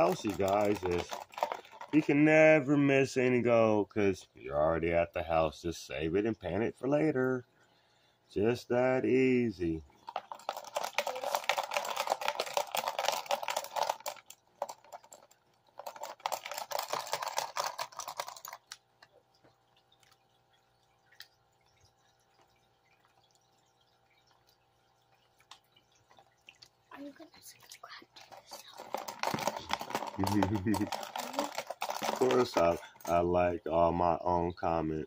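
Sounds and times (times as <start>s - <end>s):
gravel and water sloshing in a pan: 0.0s - 3.0s, 9.4s - 34.8s
faint steady hum: 0.0s - 35.0s
water drips: 18.5s - 30.8s.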